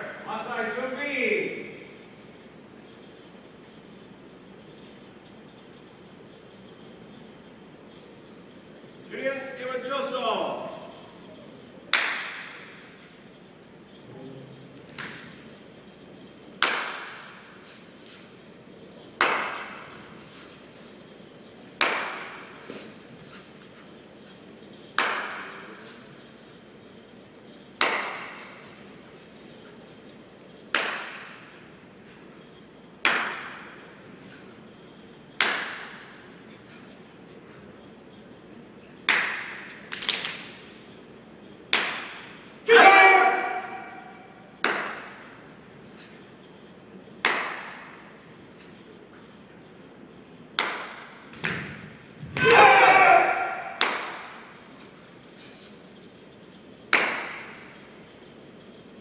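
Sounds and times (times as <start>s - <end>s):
sharp snaps of group movement: 10.9s - 14.0s, 14.8s - 15.6s, 16.5s - 38.0s, 39.0s - 40.9s, 41.6s - 49.3s, 50.5s - 58.8s
students shouting: 42.7s - 44.1s, 52.4s - 53.8s.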